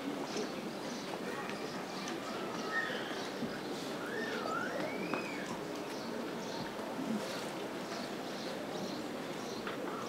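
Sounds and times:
outdoor crowd background noise: 0.0s - 10.0s.

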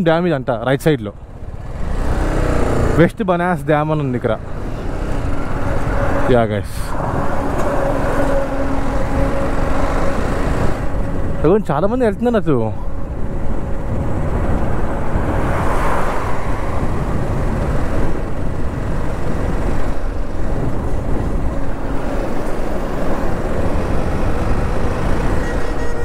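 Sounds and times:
wind rushing over microphone: 4.4s - 26.0s.

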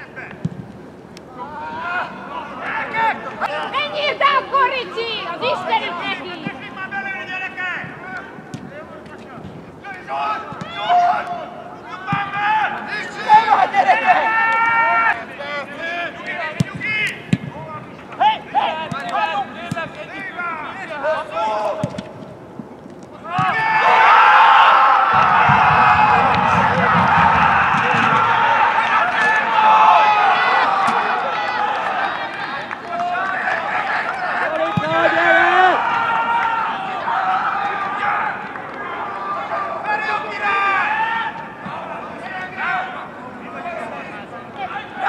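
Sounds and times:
players shouting: 1.3s - 8.9s, 9.8s - 22.1s, 23.2s - 45.0s
crowd cheering and yelling: 9.9s - 17.1s, 23.2s - 45.0s.

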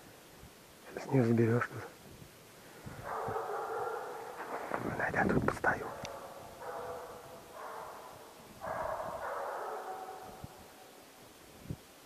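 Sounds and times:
hound baying: 3.0s - 4.6s, 5.8s - 11.0s.

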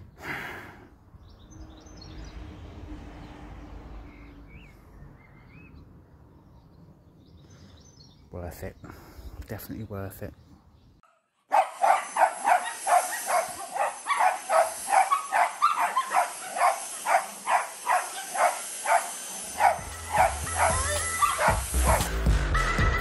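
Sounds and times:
small dog barking: 11.1s - 22.1s
vacuum motor whine: 12.1s - 22.1s
background music: 19.7s - 23.0s.

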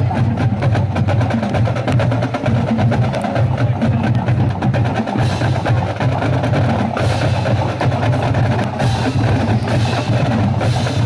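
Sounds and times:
bass drums: 0.0s - 11.0s
marching band playing: 0.0s - 11.0s
snare drums: 0.0s - 11.0s.

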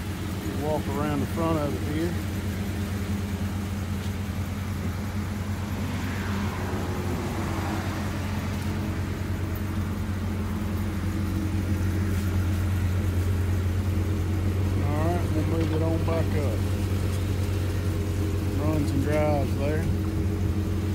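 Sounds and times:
car engine idling: 0.0s - 20.9s.

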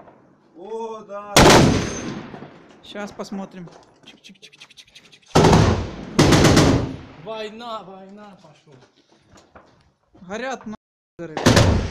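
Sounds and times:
automatic gunfire bursts: 5.4s - 7.0s.

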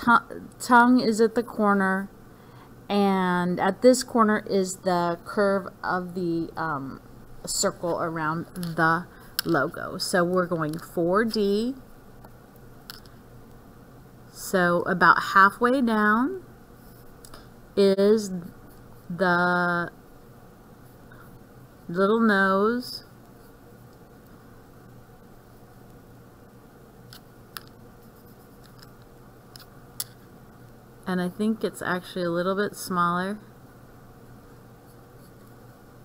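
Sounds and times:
faint low hum: 0.0s - 36.0s.

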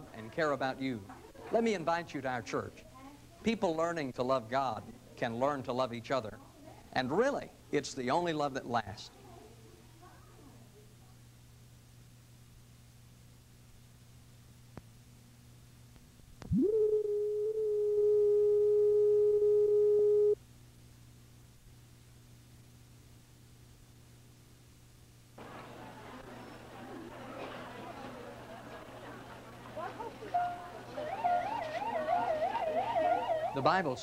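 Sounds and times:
electronic test tone beep: 16.5s - 20.4s
police siren wailing: 31.0s - 33.8s.

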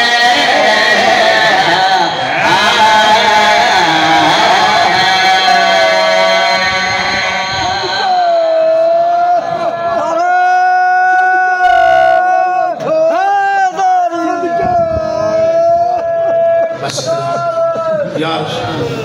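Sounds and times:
man chanting through loudspeakers: 0.0s - 8.2s.

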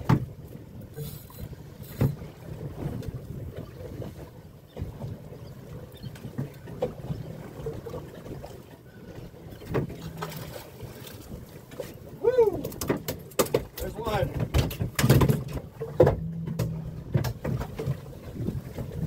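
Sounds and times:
water slapping boat hull: 0.0s - 19.0s
wind buffeting microphone: 13.9s - 19.0s.

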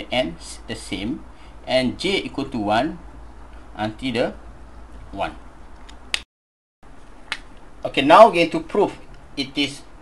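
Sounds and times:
faint room hiss: 0.0s - 6.2s, 6.8s - 10.0s.

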